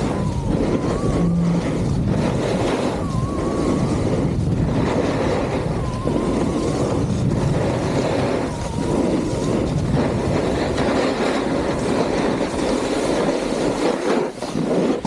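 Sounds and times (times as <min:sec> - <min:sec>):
skis scraping over snow: 0:00.0 - 0:15.0
wind rushing over microphone: 0:00.0 - 0:15.0.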